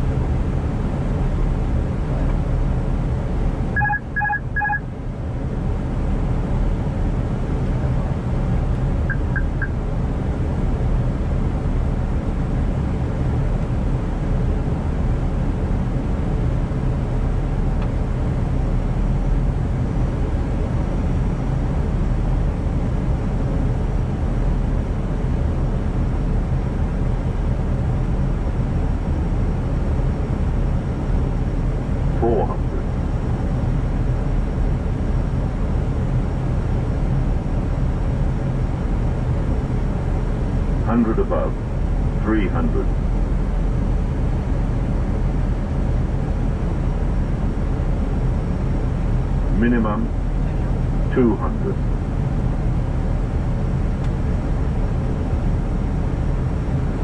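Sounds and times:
airflow and engine noise: 0:00.0 - 0:57.0
faint triple tone: 0:03.8 - 0:04.8, 0:09.1 - 0:09.8
short electronic beeps: 0:03.8 - 0:04.8, 0:09.1 - 0:09.8.

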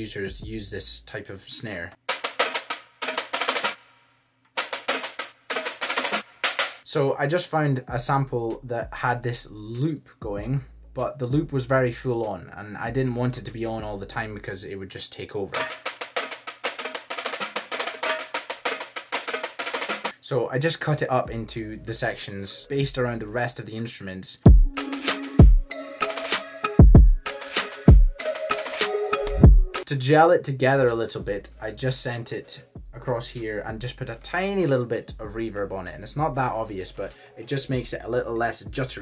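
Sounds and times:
snare drum loop: 0:02.0 - 0:03.9, 0:04.5 - 0:06.8, 0:15.6 - 0:20.1, 0:24.5 - 0:29.9.

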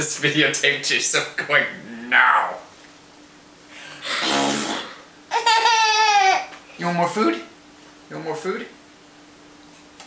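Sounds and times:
baby squealing: 0:05.3 - 0:06.5.

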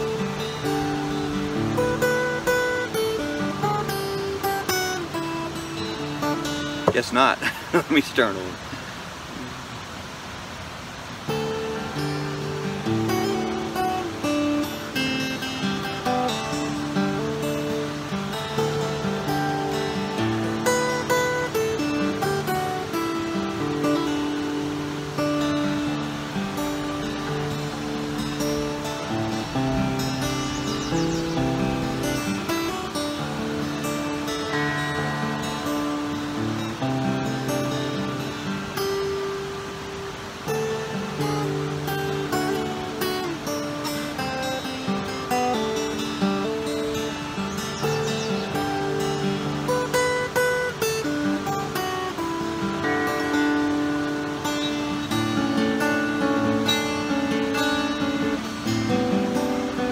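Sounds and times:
fingerstyle acoustic guitar: 0:00.0 - 0:08.3, 0:11.2 - 0:59.9.

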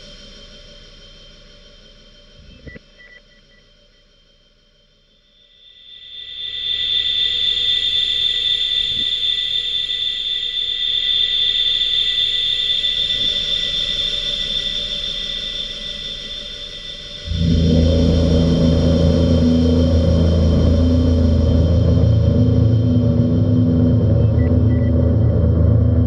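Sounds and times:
faint low rumble: 0:00.0 - 0:04.4, 0:17.2 - 0:26.0
sustained high ringing tone: 0:12.5 - 0:26.0
loud low dense drone: 0:13.2 - 0:26.0.

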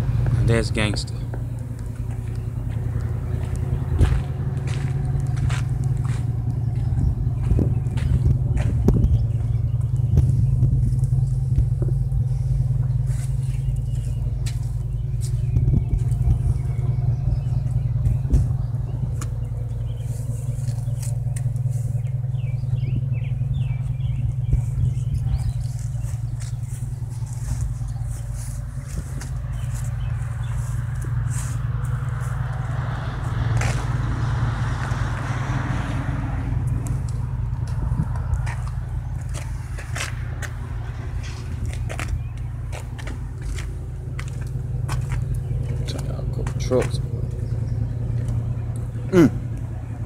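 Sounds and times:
motor engine idling: 0:00.0 - 0:50.0.

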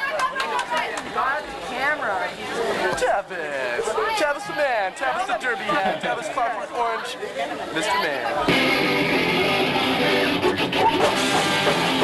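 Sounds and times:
voices chattering: 0:00.0 - 0:12.0
ska band playing: 0:08.5 - 0:12.0.

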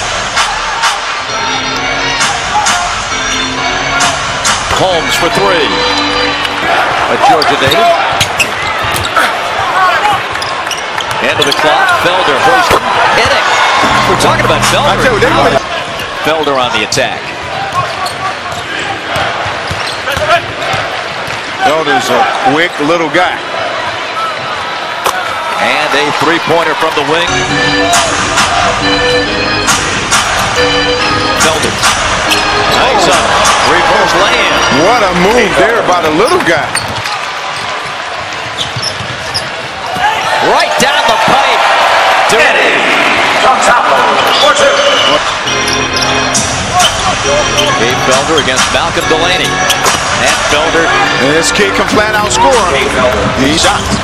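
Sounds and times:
arena crowd hum: 0:00.0 - 0:54.0
sneakers squeaking on hardwood: 0:36.2 - 0:40.2
basketball bouncing: 0:36.7 - 0:40.1.

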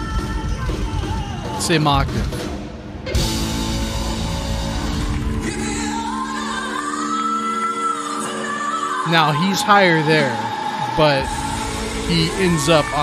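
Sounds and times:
man singing: 0:00.0 - 0:02.2, 0:05.4 - 0:06.8, 0:08.9 - 0:13.0
rock band playing: 0:00.0 - 0:07.0.

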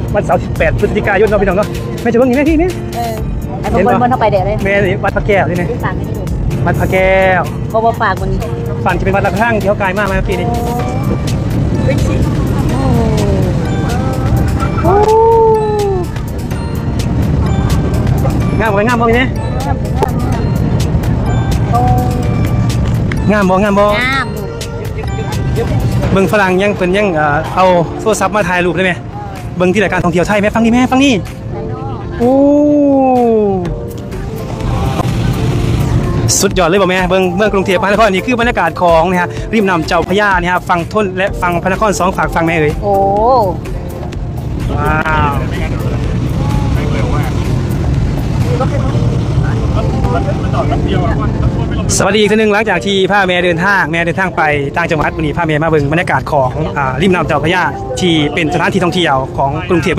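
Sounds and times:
boat engine rumble: 0:00.0 - 0:59.9
music: 0:00.0 - 0:59.9
water noise: 0:00.0 - 0:59.9
wind: 0:00.0 - 0:59.9.

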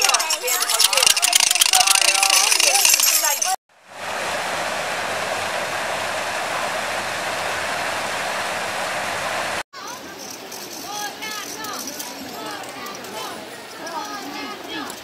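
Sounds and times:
water rushing over weir: 0:02.2 - 0:09.6
creek flowing: 0:03.7 - 0:09.6.

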